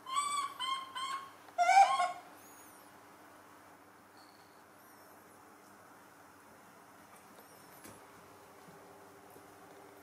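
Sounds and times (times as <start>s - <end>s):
baby macaque high-pitched calls: 0.0s - 2.3s.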